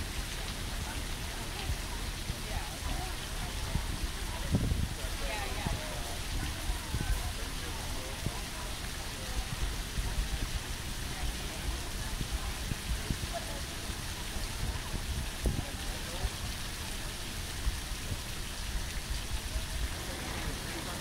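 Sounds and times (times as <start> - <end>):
steady rain: 0.0 - 21.0.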